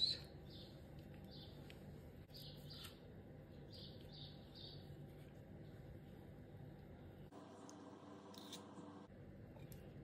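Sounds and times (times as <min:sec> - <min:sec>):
bird chirping: 0:00.0 - 0:01.7, 0:02.3 - 0:03.0, 0:03.6 - 0:04.9
low steady hum: 0:00.0 - 0:10.0.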